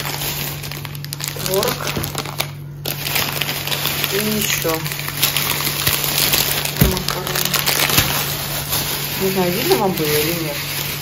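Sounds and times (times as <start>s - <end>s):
plastic bags rustling: 0.0s - 11.0s.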